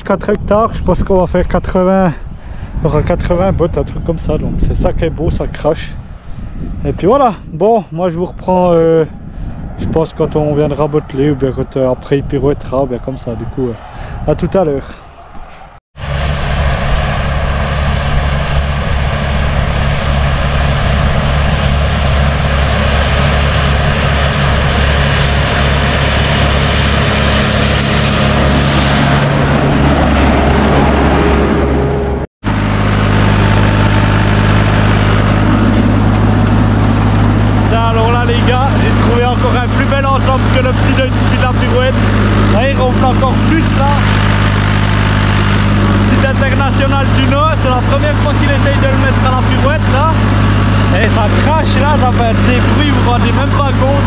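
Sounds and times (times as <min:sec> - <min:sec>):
steady engine sound: 0:01.1 - 0:54.0
man's voice: 0:09.8 - 0:15.0, 0:50.9 - 0:54.0
tractor engine running under load: 0:16.0 - 0:31.2, 0:32.5 - 0:54.0.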